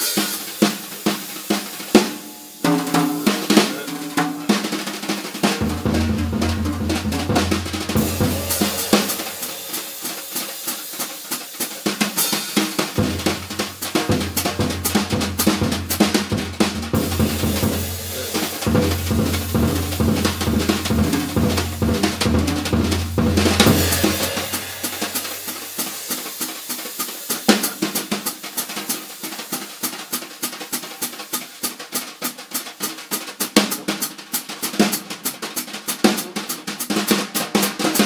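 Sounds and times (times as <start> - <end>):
brushes on a snare drum: 0.0 - 38.0.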